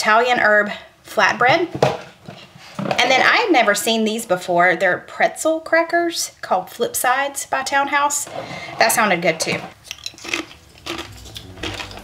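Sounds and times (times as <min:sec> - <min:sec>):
crackers clicking and tapping: 0:09.8 - 0:12.0.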